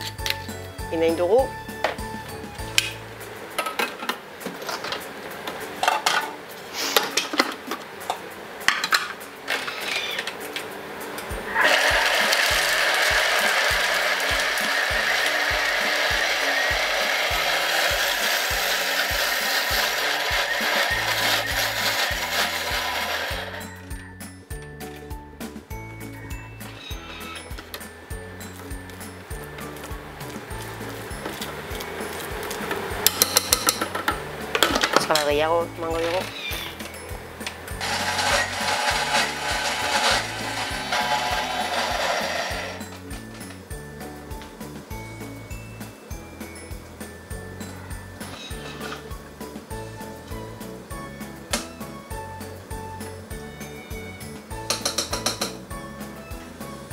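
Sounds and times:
background music: 0.0 - 56.9
food processor whirring: 11.5 - 23.7, 37.8 - 42.8
steel bowl and lid clinking: 30.5 - 43.1, 47.6 - 49.2, 54.6 - 55.7.

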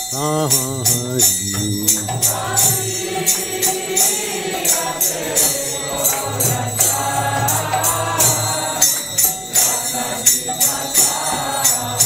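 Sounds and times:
group singing a devotional chant: 0.0 - 12.0
hand cymbals striking: 0.0 - 12.0.

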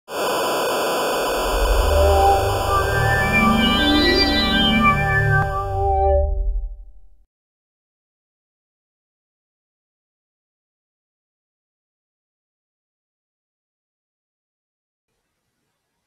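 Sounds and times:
television static hiss: 0.1 - 3.2
low bass note music: 1.4 - 7.2.

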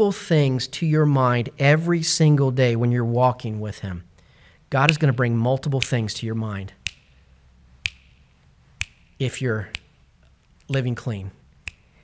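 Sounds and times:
sharp short clicks: 5.8 - 6.0, 6.8 - 7.2, 7.8 - 11.0, 11.6 - 12.0.

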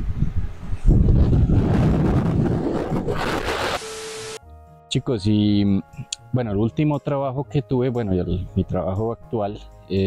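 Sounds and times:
wind blowing across microphone: 0.0 - 3.8
quiet background music: 3.9 - 10.0.

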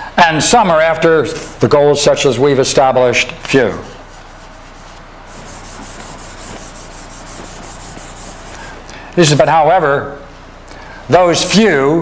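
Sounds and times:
chalk scratching on chalkboard: 4.0 - 9.5.

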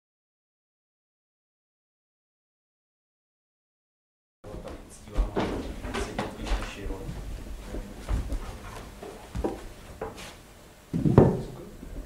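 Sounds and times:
heavy thump: 4.7 - 6.7, 10.9 - 11.7.

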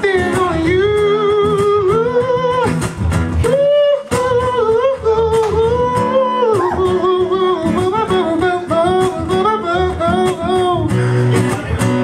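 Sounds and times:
man singing wordless notes: 0.0 - 2.8, 3.4 - 12.0
strummed acoustic guitar: 0.0 - 12.0.

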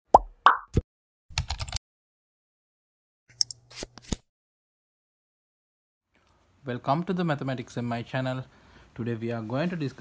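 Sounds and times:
keyboard typing clicks: 1.4 - 1.8.

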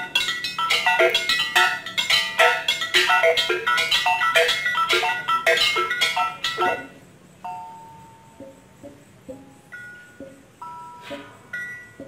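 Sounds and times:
gamelan kettle gongs ringing: 0.0 - 7.0.

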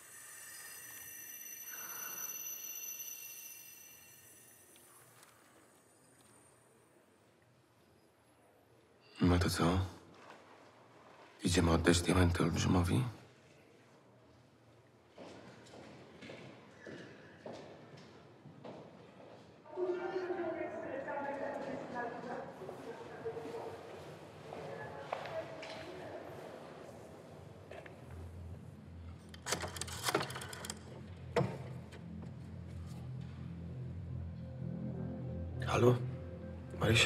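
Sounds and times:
footsteps echoing in a corridor: 10.1 - 11.4, 13.3 - 28.8
low hum: 30.7 - 37.0.

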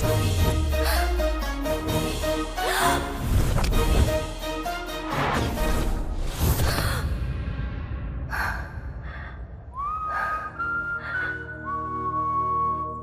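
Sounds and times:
dramatic background score: 0.0 - 13.0
high whistle-like melody: 9.8 - 13.0.

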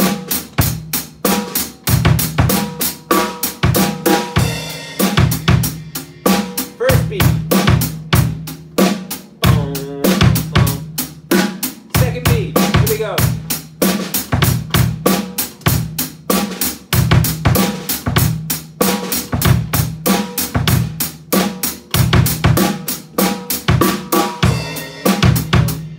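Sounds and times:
hi-hat and cymbal strokes: 0.0 - 14.3, 20.1 - 25.9
snare drum: 0.0 - 25.9.

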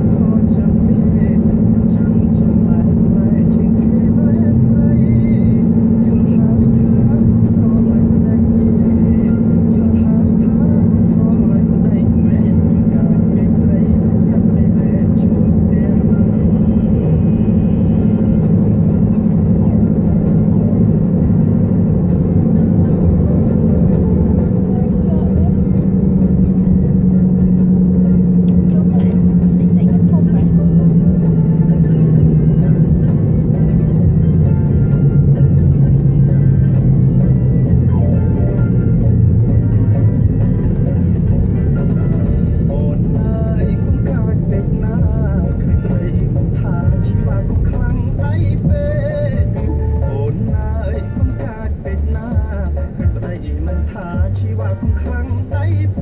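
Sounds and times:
car engine and tyre drone: 0.0 - 56.0
music playing: 0.0 - 56.0.

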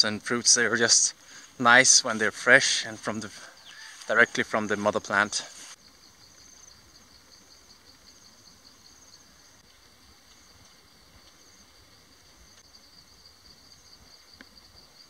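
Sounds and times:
insects trilling: 0.0 - 15.0.

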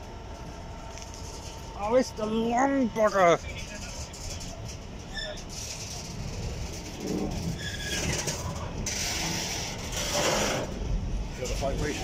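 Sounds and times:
train wheels rumbling on rails: 0.0 - 12.0.

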